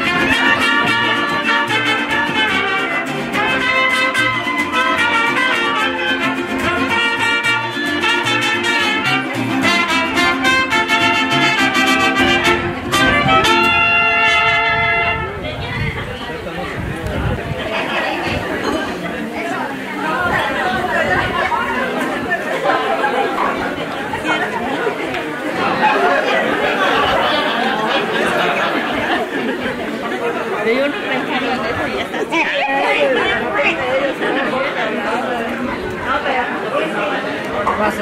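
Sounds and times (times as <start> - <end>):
crowd hubbub of conversation: 0.0 - 38.0.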